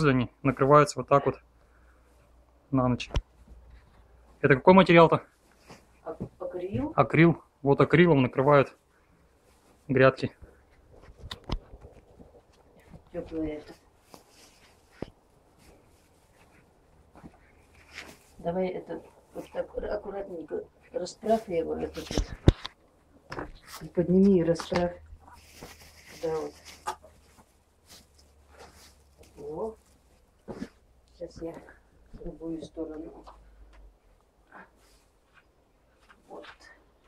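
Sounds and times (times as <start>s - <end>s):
fabric cover rustling: 5.3s - 6.7s, 8.8s - 33.2s.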